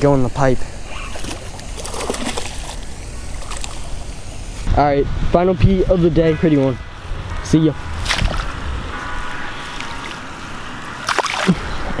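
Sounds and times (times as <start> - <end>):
fish splashing in shallow water: 0.8 - 4.5, 8.0 - 8.6, 9.2 - 11.7.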